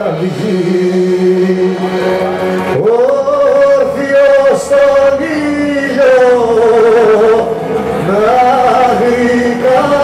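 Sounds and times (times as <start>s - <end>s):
man singing long note: 0.0s - 10.0s.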